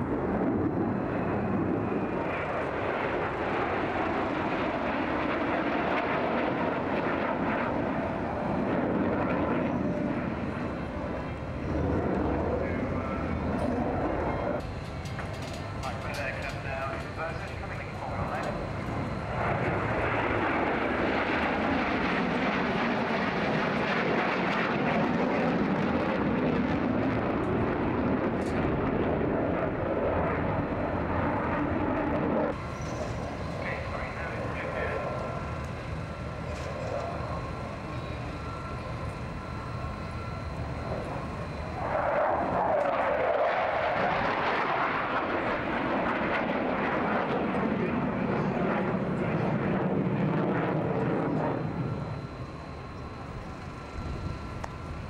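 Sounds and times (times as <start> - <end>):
jet engines roaring: 0.0 - 55.0
jet passing by: 0.0 - 55.0.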